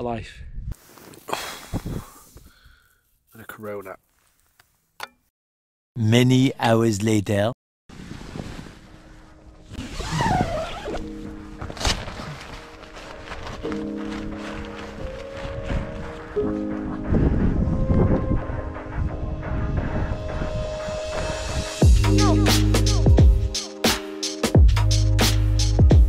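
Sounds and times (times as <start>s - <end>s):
background music of held chords: 13.6s - 26.0s
low rushing noise: 15.7s - 21.8s.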